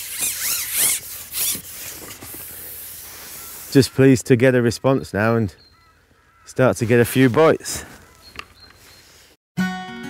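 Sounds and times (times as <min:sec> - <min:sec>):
fishing pole squeaky swishes: 0:00.0 - 0:03.8.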